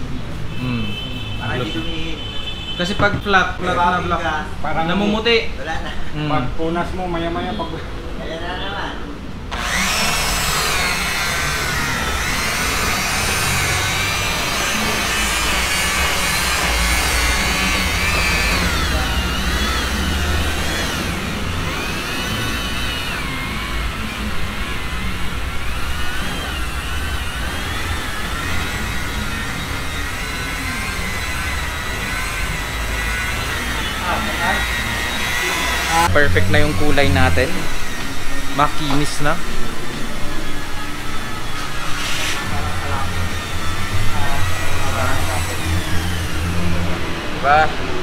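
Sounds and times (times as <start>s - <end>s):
electric rotary polisher whining: 9.5s - 47.4s.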